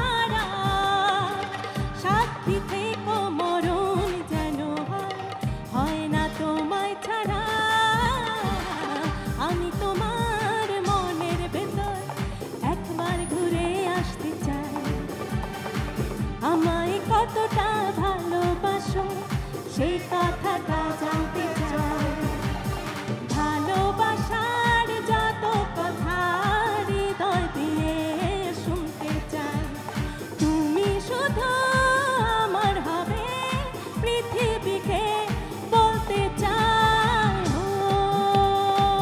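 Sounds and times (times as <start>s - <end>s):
band with guitars keyboard and drums: 0.0s - 39.0s
woman singing into a microphone: 0.0s - 39.0s.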